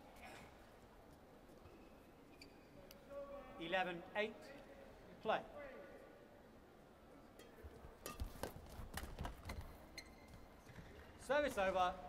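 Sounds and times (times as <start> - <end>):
footfalls on court floor: 7.9 - 11.7
racket hitting shuttlecock: 8.0 - 9.6.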